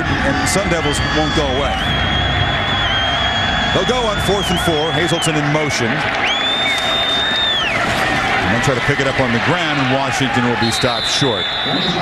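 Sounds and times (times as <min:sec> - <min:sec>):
stadium crowd roar: 0:00.0 - 0:12.0
long high whistle: 0:00.9 - 0:05.3.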